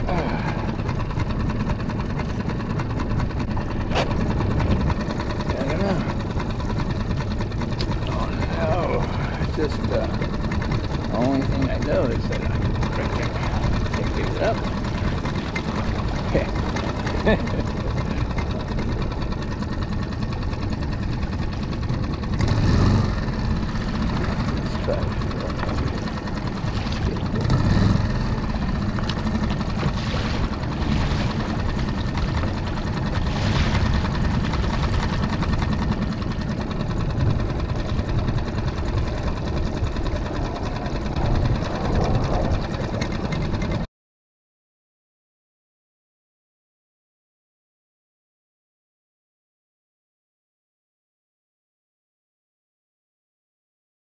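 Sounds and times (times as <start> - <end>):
outboard motor running: 0.0 - 43.9.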